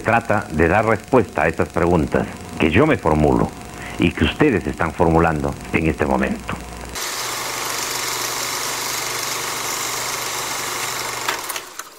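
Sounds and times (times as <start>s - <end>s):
low hum: 0.0s - 7.0s
film projector whirring: 0.0s - 11.9s.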